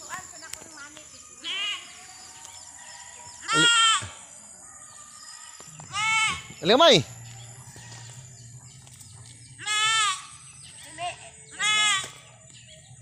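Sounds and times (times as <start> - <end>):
goat bleating: 3.4 - 4.1, 5.9 - 6.6, 9.6 - 10.4, 11.5 - 12.2.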